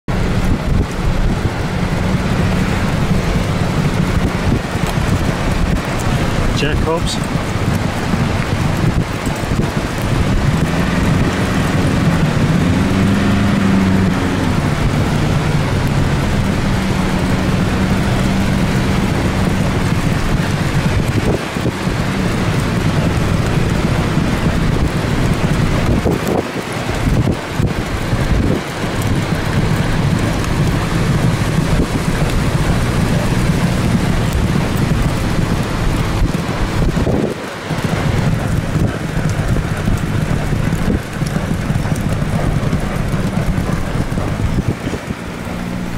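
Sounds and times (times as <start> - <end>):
car engine hum: 0.0 - 45.9
wind and road noise: 0.0 - 45.9.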